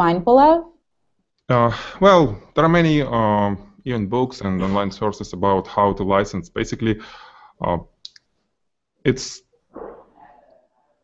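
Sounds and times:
man saying uh: 1.5s - 7.0s, 7.6s - 7.9s, 9.1s - 9.4s.

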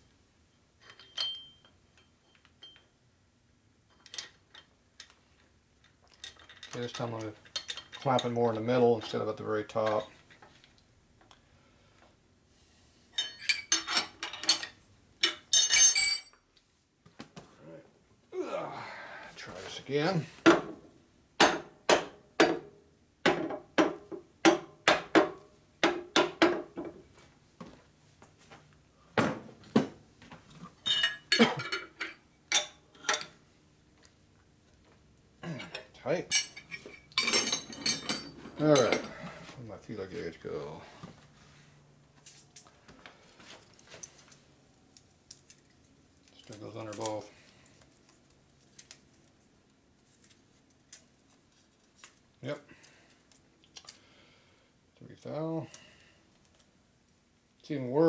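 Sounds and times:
metal tools knocking and clinking: 0.8s - 2.9s, 5.8s - 8.4s, 13.2s - 16.7s, 30.8s - 33.4s, 35.6s - 39.2s.

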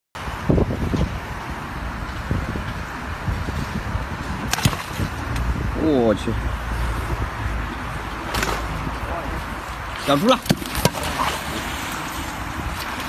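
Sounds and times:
wind on phone microphone: 0.2s - 9.9s.

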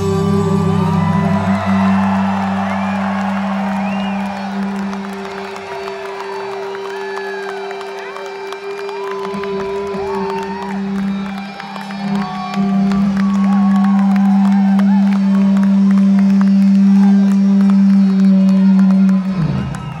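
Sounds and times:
crowd cheering: 0.0s - 20.0s.

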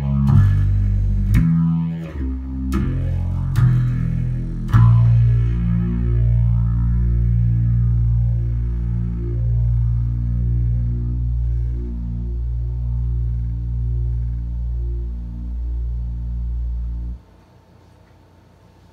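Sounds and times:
distorted electric bass drone: 0.0s - 17.3s.

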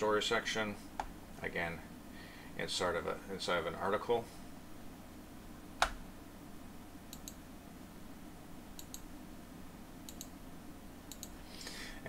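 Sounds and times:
computer mouse clicks: 7.1s - 7.4s, 8.8s - 9.1s, 10.1s - 10.4s, 11.1s - 11.4s.

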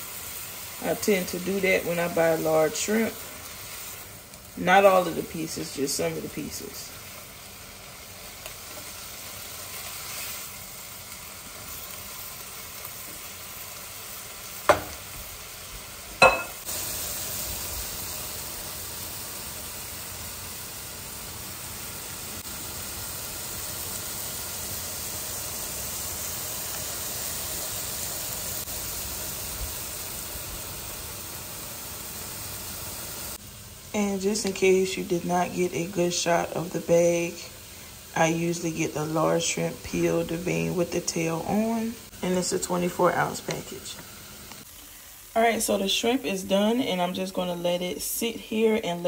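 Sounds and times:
shrimp sizzling in a skillet: 0.0s - 49.0s.

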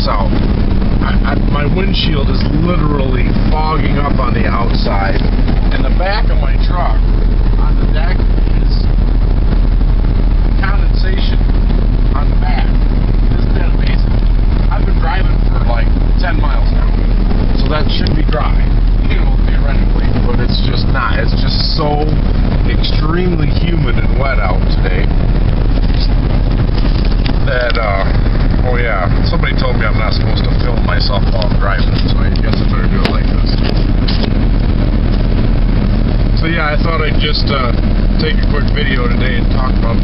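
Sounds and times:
car engine and road noise: 0.0s - 40.0s.

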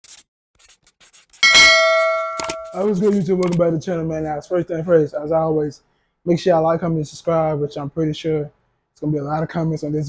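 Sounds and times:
metallic bell ding: 1.4s - 3.0s.

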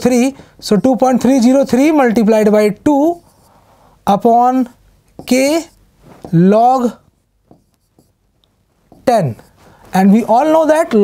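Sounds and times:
writing on a board: 0.1s - 3.6s, 5.1s - 8.2s, 8.8s - 11.0s.

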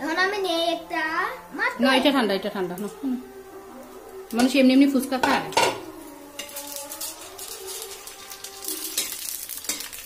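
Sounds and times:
shells sizzling in hot oil: 4.2s - 10.0s
metal spoon stirring in pan: 5.2s - 10.0s.

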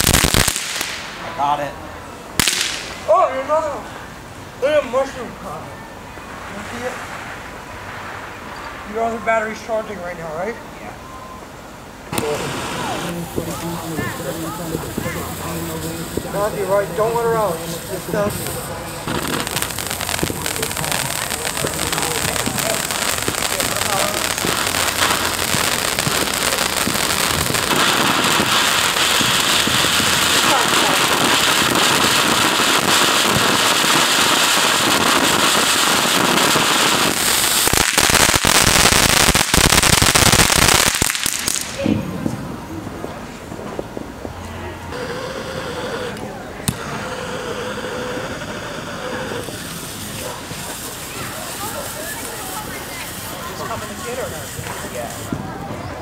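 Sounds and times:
firework fountain hissing and crackling: 0.0s - 56.0s.

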